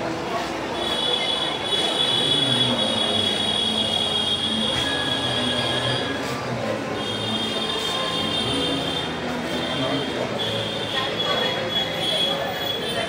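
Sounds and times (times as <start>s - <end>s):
background chatter: 0.0s - 13.0s.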